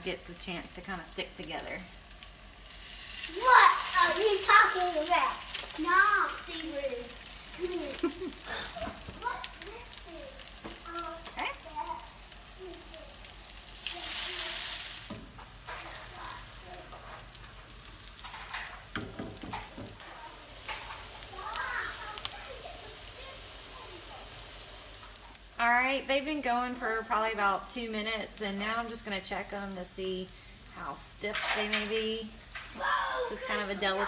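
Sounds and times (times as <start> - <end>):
food sizzling in oil: 0.0 - 34.0.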